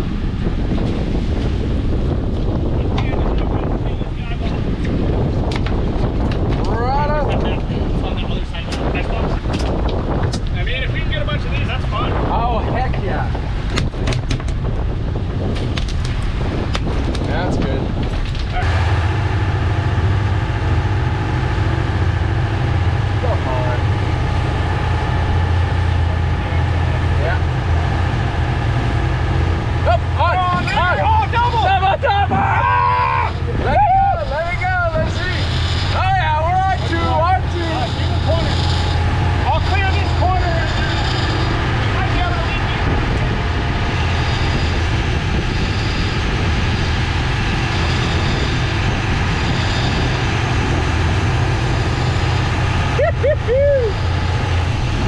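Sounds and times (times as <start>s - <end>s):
boat engine droning: 0.0s - 55.0s
wind: 0.0s - 55.0s
voices: 18.5s - 54.6s.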